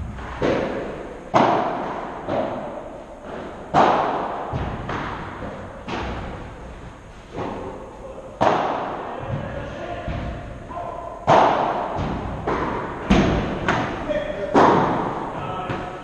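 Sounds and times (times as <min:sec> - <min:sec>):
padel ball hits echoing in hall: 0:00.0 - 0:06.4, 0:08.4 - 0:16.0.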